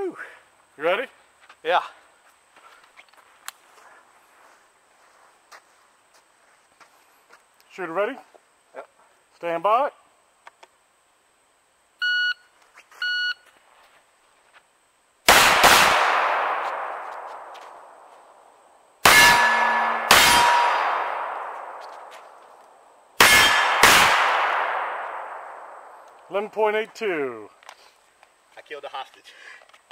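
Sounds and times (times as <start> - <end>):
pistol shots echoing: 15.3 - 17.8, 19.0 - 21.8, 23.2 - 26.0.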